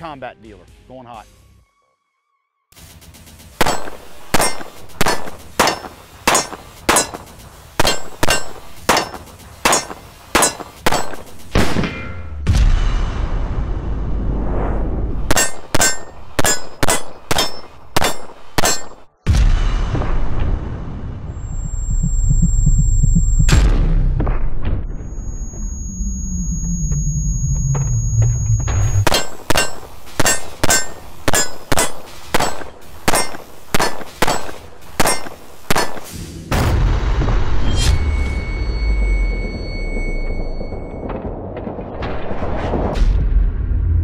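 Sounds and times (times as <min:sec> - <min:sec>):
pistol shots: 0:03.6 - 0:12.0, 0:15.3 - 0:19.1, 0:29.0 - 0:36.2
low rumble with falling tone: 0:12.4 - 0:15.3, 0:19.3 - 0:29.0, 0:36.5 - 0:44.0.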